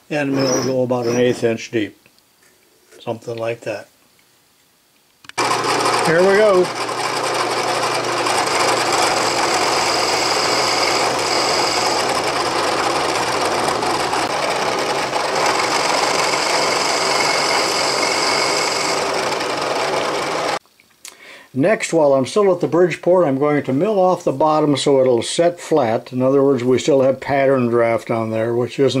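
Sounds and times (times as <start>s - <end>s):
milling machine cutting metal: 0.3s - 1.4s, 5.4s - 20.6s.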